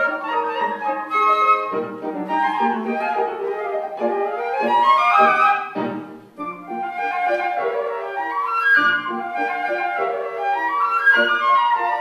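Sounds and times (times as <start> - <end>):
flute duet: 0.0 - 12.0.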